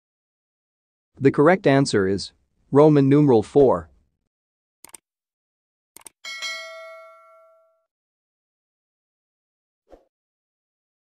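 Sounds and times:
notification bell ding: 0:06.2 - 0:07.9.

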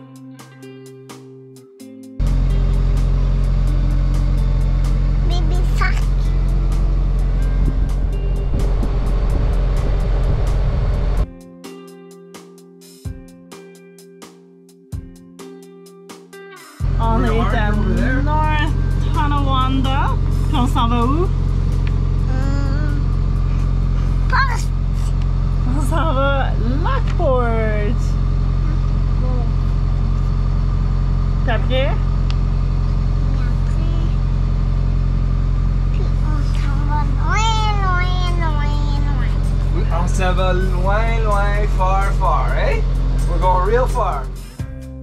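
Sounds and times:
boat engine humming: 0:02.2 - 0:11.2, 0:16.8 - 0:44.6
child talking: 0:05.2 - 0:06.4, 0:17.1 - 0:18.2, 0:22.3 - 0:23.1, 0:24.1 - 0:25.1, 0:28.7 - 0:29.6, 0:33.3 - 0:34.2, 0:35.9 - 0:39.5.

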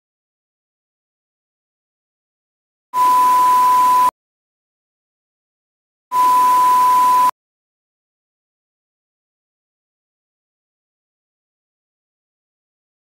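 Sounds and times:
high pure beep: 0:03.0 - 0:04.1, 0:06.1 - 0:07.3.

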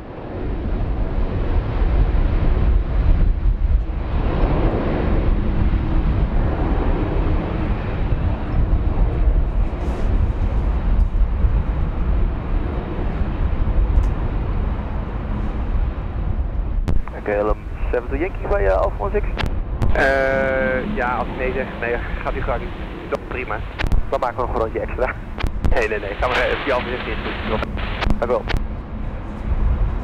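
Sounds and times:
jet engines roaring: 0:00.0 - 0:30.0.

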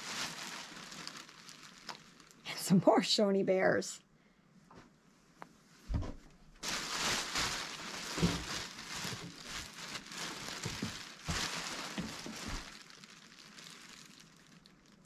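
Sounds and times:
plastic bag rustling: 0:00.0 - 0:02.4, 0:06.6 - 0:15.0
soft thumps: 0:05.9 - 0:06.3.

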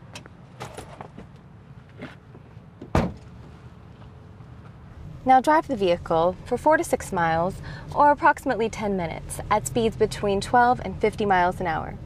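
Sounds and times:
car trunk lid thud: 0:02.9 - 0:03.2.

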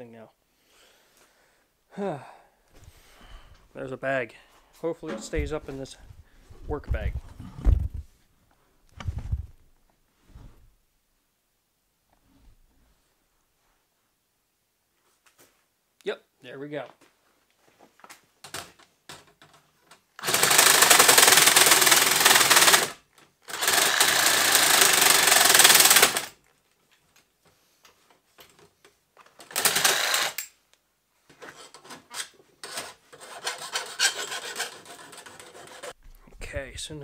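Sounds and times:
handling knocks: 0:05.0 - 0:05.9
reciprocating saw cutting: 0:20.2 - 0:26.3, 0:29.5 - 0:30.5, 0:32.7 - 0:36.0.

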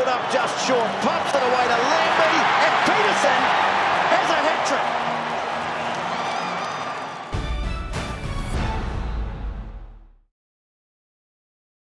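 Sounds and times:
stadium crowd cheering: 0:00.0 - 0:09.5.

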